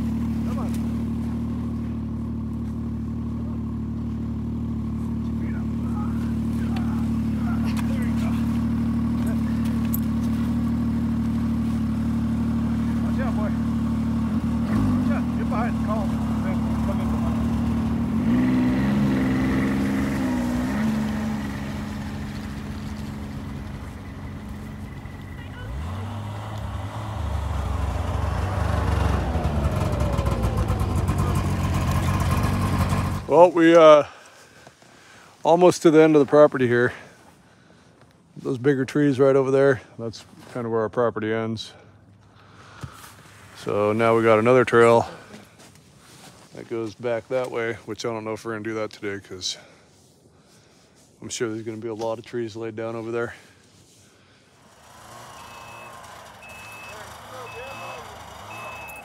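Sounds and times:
snowmobile engine idling and revving: 0.0s - 49.8s, 51.2s - 59.0s.

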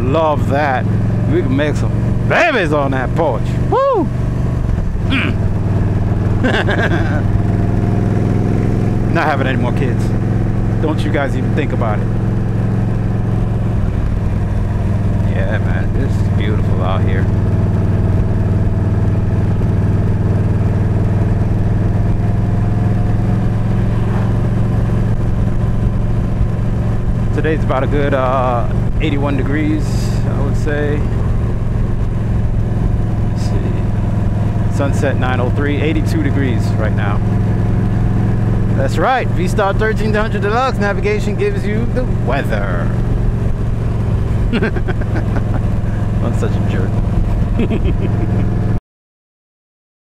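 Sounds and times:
motorcycle engine cruising: 0.0s - 48.8s
road and wind noise: 0.0s - 48.8s
short laugh: 6.4s - 7.3s, 44.5s - 46.1s, 47.6s - 48.5s.

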